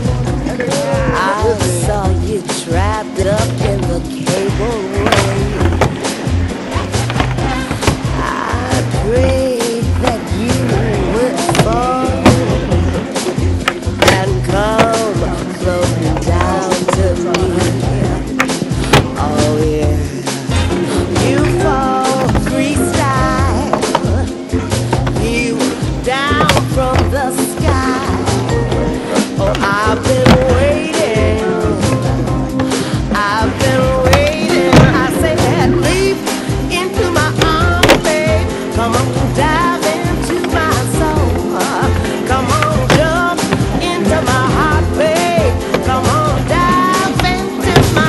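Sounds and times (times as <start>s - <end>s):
music with singing and bass: 0.0s - 48.0s
skateboard clacks: 0.0s - 48.0s
skateboard wheels rolling on ramp: 1.8s - 20.0s, 20.6s - 48.0s.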